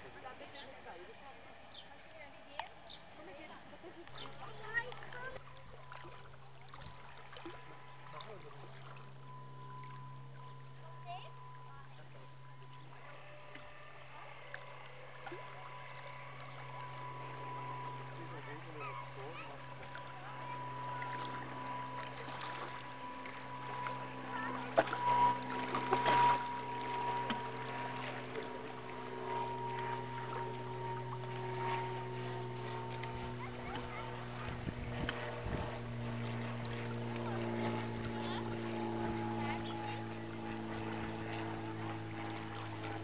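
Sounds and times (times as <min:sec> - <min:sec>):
motor hum with whine: 0:00.0 - 0:43.0.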